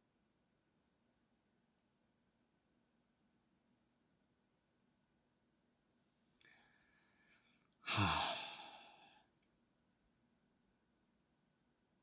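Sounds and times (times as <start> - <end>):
man sighing: 7.8 - 9.2.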